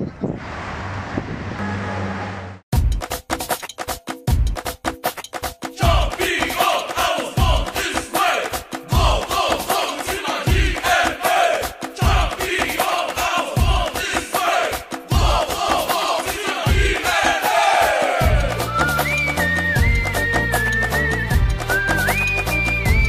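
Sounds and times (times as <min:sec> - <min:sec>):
heavy beat: 0:02.7 - 0:20.2
voices chanting and shouting: 0:05.8 - 0:18.8.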